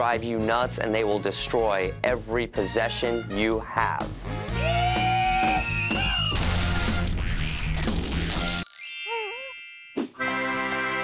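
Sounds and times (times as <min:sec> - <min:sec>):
rock music: 0:04.0 - 0:08.6.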